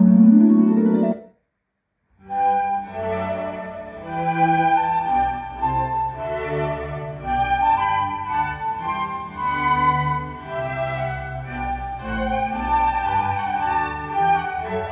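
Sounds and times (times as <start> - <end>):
classical violin and piano music: 2.3 - 14.9.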